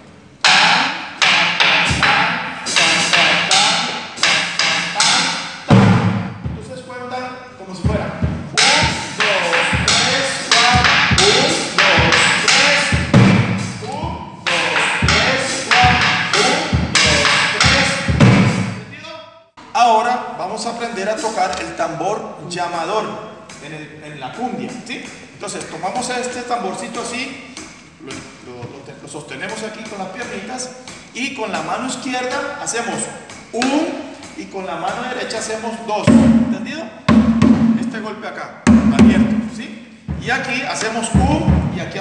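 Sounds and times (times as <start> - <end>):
sticks clacking on drum shell: 0.4 - 5.6, 8.5 - 13.2, 13.8 - 18.1
drumhead thumps: 0.4 - 6.8, 7.8 - 18.9, 36.0 - 38.0, 38.7 - 42.0.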